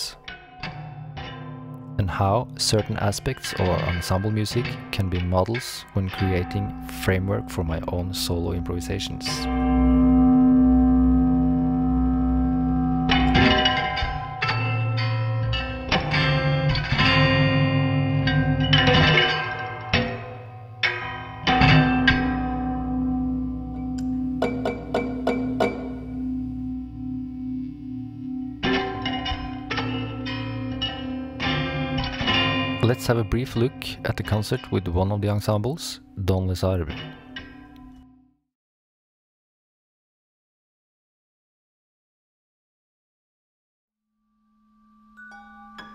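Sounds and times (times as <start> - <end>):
slide guitar low drone: 0.0 - 37.8
plucked ringing guitar notes: 0.0 - 38.1.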